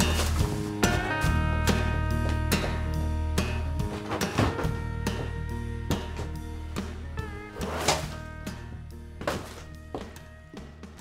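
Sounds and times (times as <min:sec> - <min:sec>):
song playing: 0:00.0 - 0:10.8.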